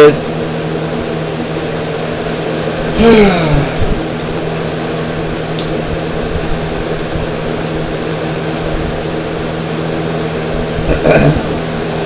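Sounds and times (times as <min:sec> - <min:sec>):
machine hum with hiss: 0:00.0 - 0:12.0.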